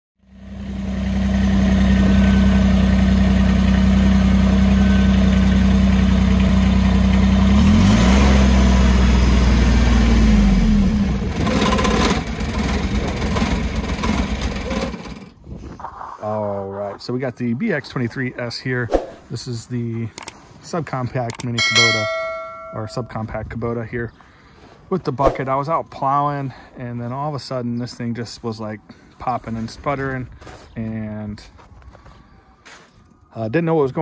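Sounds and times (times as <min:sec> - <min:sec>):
tractor diesel engine running: 0:00.3 - 0:15.4.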